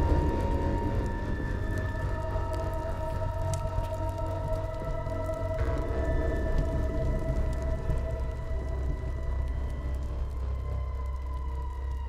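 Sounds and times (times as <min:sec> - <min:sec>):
deep low rumble: 0:00.0 - 0:12.0
eerie held tone drone: 0:00.0 - 0:12.0.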